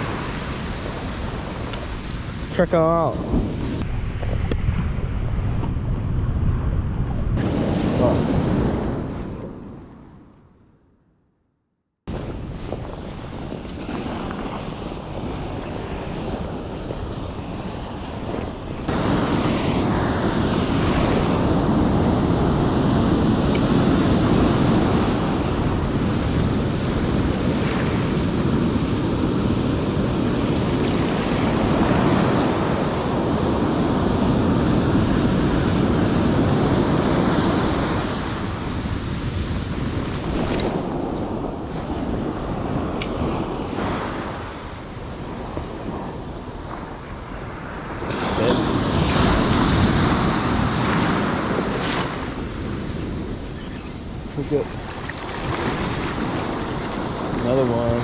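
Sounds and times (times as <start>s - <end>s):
ocean surf breaking: 0.0s - 4.0s, 7.4s - 10.1s, 12.1s - 58.0s
wind on microphone: 0.0s - 10.7s, 12.1s - 58.0s.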